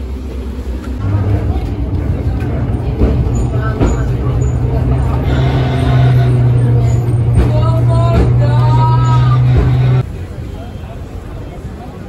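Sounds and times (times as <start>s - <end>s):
tram running on rails: 0.0s - 12.0s.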